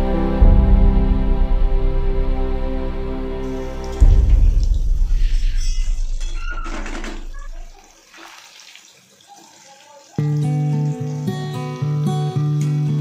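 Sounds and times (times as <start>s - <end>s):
background music: 0.0s - 6.6s.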